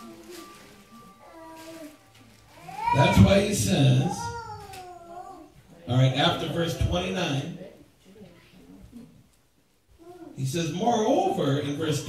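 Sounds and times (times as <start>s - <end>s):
high-pitched wailing cry: 2.5s - 5.5s
man speaking over loudspeaker: 2.9s - 4.4s, 5.9s - 7.6s, 10.4s - 12.0s.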